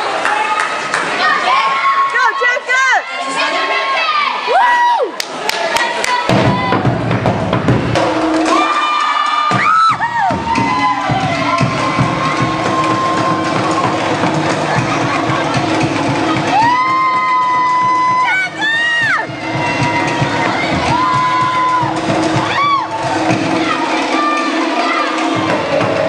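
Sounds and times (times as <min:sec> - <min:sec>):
crowd cheering with high shouts: 0:00.0 - 0:07.1, 0:08.0 - 0:26.0
drum ensemble playing fast beat: 0:06.1 - 0:26.0.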